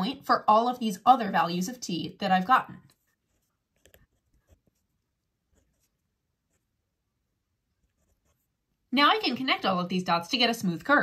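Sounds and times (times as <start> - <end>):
pen scratching on paper: 2.8 - 6.8, 7.7 - 8.6.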